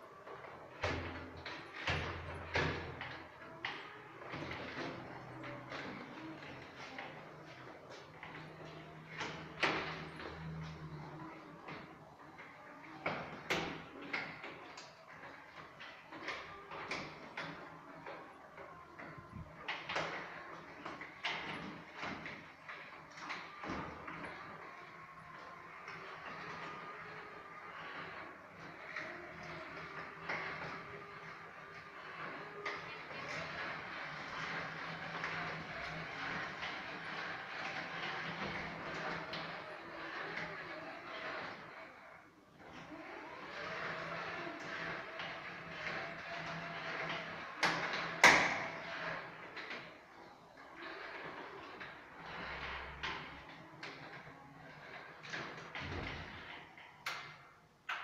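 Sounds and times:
electric wheelchair motor whine: 0.0s - 58.0s.

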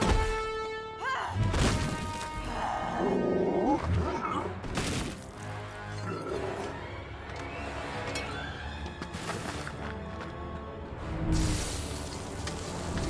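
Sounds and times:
film score music: 0.0s - 13.0s.

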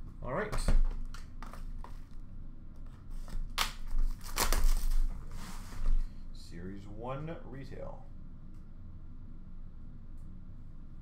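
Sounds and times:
packaging crinkling: 3.8s - 5.2s.

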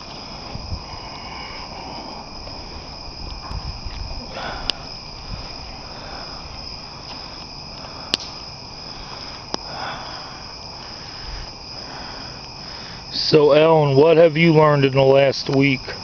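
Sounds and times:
campfire crackling: 0.0s - 16.0s
crickets chirping: 0.0s - 16.0s
campfire sharp pops: 2.4s - 5.6s, 6.6s - 9.8s.

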